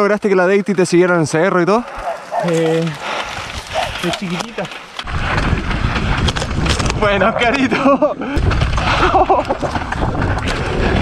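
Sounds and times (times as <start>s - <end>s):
bike rattling over ground: 2.4s - 11.0s
wind buffeting microphone: 3.0s - 11.0s.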